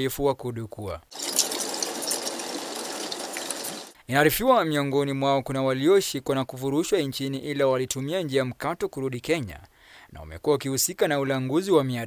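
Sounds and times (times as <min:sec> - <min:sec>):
banknote counting machine rattling: 0:01.2 - 0:03.9.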